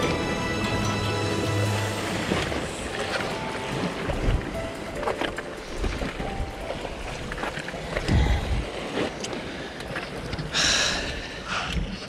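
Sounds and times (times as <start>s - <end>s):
sea surf washing over rocks: 0.0s - 11.4s
wind buffeting microphone: 2.2s - 10.5s.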